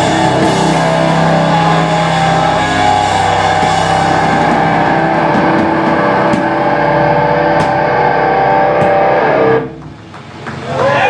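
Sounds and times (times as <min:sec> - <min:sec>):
distorted electric guitars droning: 0:00.0 - 0:10.5.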